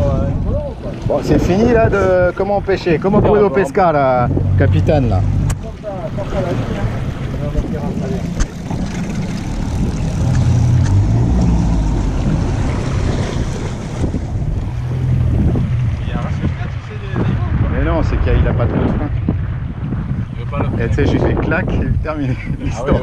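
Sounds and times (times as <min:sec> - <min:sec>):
outboard motor running: 0:00.0 - 0:17.7
water rushing past hull: 0:00.0 - 0:23.0
wind buffeting microphone: 0:00.0 - 0:23.0.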